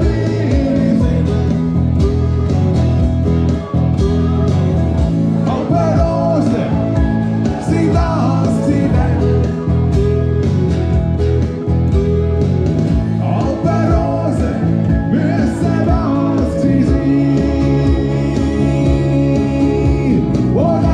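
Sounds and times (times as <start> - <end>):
man singing: 0.0 - 2.1, 5.4 - 9.8, 13.1 - 20.9
electric bass: 0.0 - 20.9
twelve-string acoustic guitar: 0.0 - 20.9.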